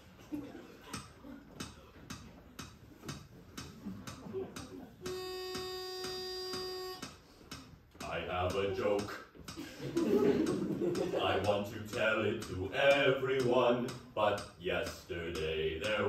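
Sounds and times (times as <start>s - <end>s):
steady ticking: 0.9s - 16.0s.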